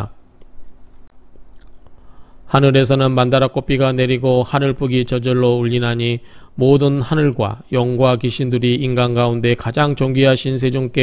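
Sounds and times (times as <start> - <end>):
faint steady hum: 0.0 - 11.0
low background hiss: 0.0 - 11.0.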